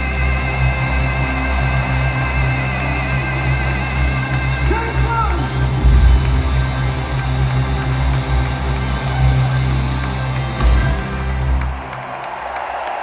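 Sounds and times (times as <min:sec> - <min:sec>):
crowd cheering and applauding: 0:00.0 - 0:13.0.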